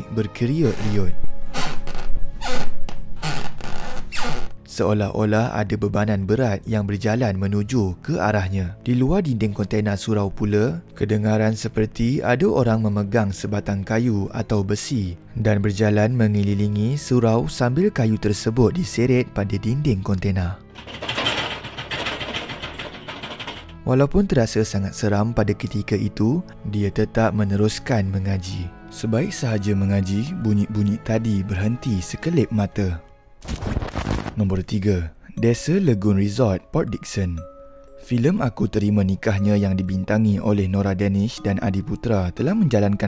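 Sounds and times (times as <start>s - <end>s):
person narrating: 0.0s - 1.2s
floor creaking: 0.7s - 4.6s, 20.8s - 23.8s
rod scraping metal container: 20.8s - 23.7s.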